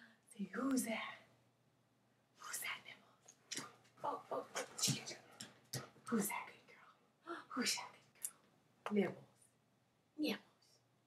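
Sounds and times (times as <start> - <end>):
woman whispering: 0.0 - 1.3, 2.4 - 3.2, 4.0 - 5.4, 6.1 - 8.3.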